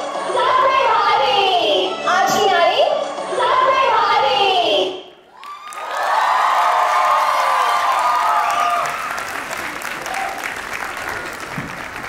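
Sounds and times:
crowd shouting and cheering: 3.4 - 12.0
audience applauding: 5.3 - 12.0.

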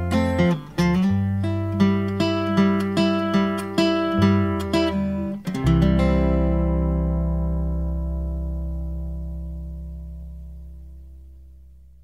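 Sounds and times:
guitar chord ringing: 0.0 - 12.0
deep bass notes: 6.0 - 12.0.

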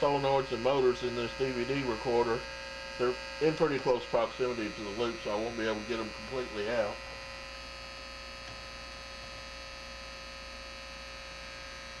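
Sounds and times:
mains hum with overtones: 0.0 - 12.0.

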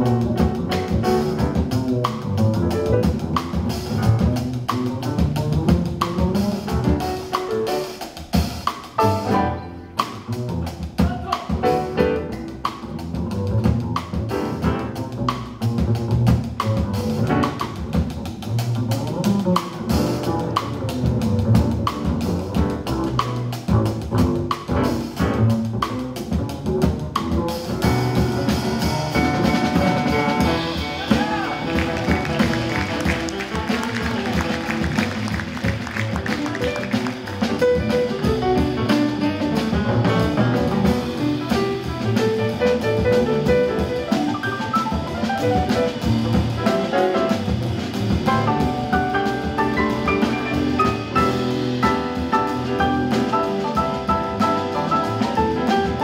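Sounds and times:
drum kit with cymbals: 0.0 - 56.0
upright double bass: 0.0 - 56.0.

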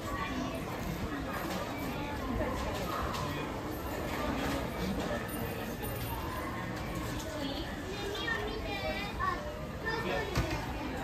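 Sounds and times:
young child talking: 6.9 - 11.0.

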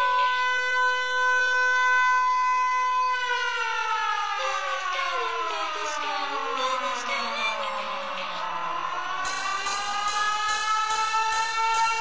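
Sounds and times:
siren-like tone: 0.0 - 12.0
electronic body music: 4.4 - 12.0.

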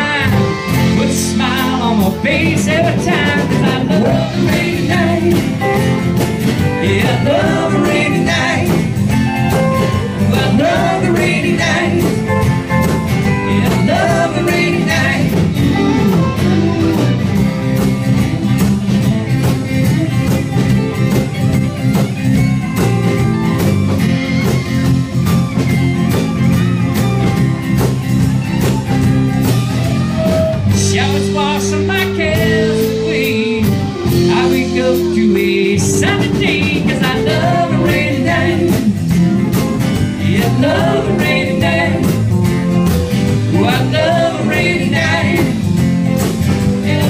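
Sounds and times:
bass: 0.0 - 47.0
electric guitar: 0.0 - 47.0
drum beat: 2.7 - 31.2.

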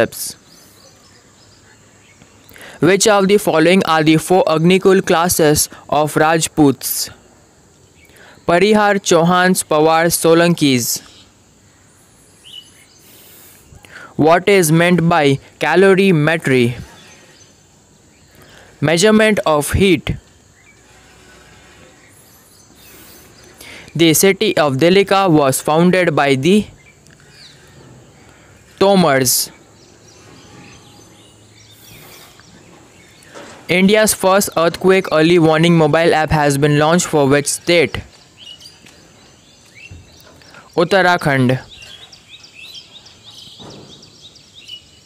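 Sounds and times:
person speaking: 0.0 - 0.4, 2.8 - 7.2, 8.5 - 11.1, 13.2 - 16.9, 18.8 - 20.2, 22.9 - 26.8, 28.8 - 29.6, 33.7 - 38.1, 40.7 - 42.0
bird chirps: 0.0 - 5.8, 6.4 - 45.0
faint background noise: 0.0 - 45.0.

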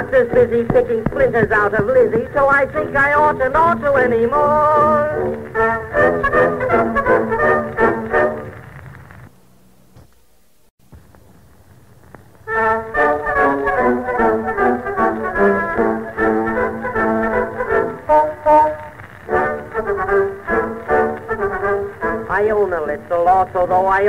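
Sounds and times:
person singing: 2.6 - 6.5
brass band playing: 2.6 - 8.6, 12.5 - 22.5.

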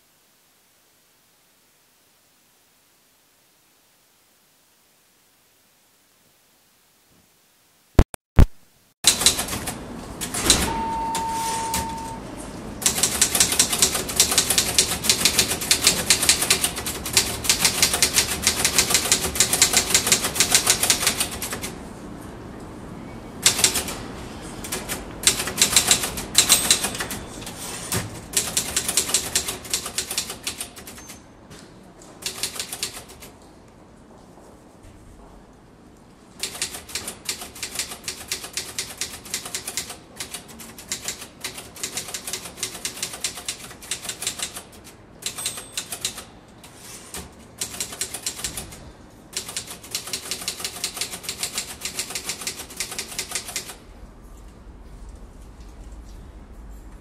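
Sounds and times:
fast typing on keyboard: 9.1 - 9.8, 12.8 - 21.7, 23.4 - 24.0, 24.6 - 27.2, 28.4 - 31.1, 32.2 - 33.3, 36.4 - 46.3, 47.6 - 48.8, 49.4 - 53.8.

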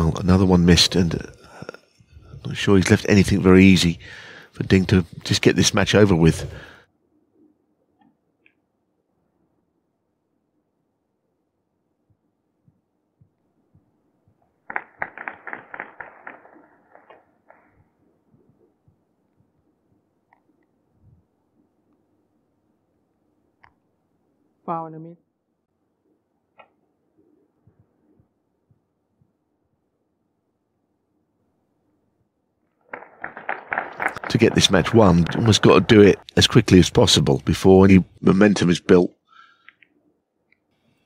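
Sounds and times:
sharp clicks or claps: 14.7 - 17.7, 32.9 - 36.2
sharp irregular taps: 32.9 - 36.2.

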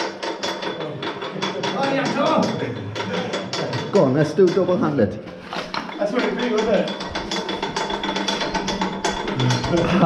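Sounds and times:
hand-cranked winch gears clicking: 0.0 - 10.0.

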